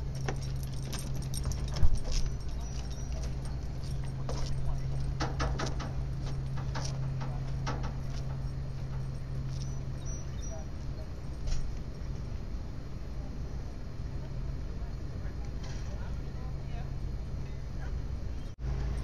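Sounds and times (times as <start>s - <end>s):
steady low hum: 0.0s - 19.0s
dog collar tags jingling: 0.1s - 5.0s.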